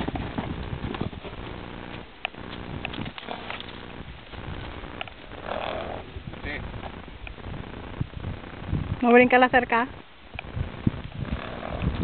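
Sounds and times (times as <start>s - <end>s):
horse snorting: 2.9s - 3.9s, 4.5s - 6.2s, 10.8s - 12.0s.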